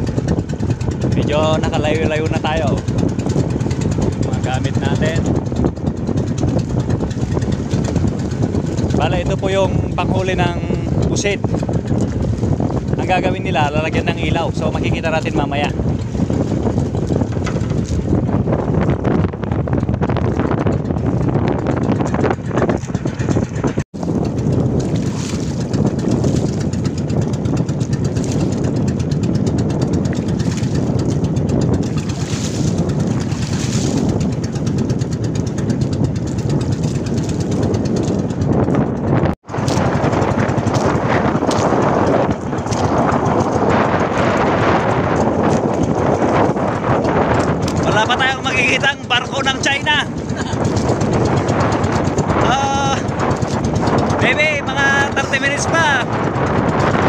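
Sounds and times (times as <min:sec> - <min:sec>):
boat engine running: 0:00.0 - 0:57.0
water rushing along hull: 0:00.0 - 0:57.0
wind buffeting microphone: 0:00.0 - 0:57.0.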